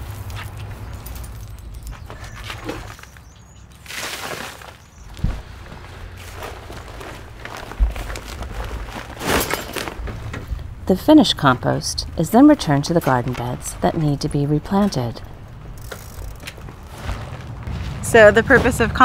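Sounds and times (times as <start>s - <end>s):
handling noises: 0.0s - 19.0s.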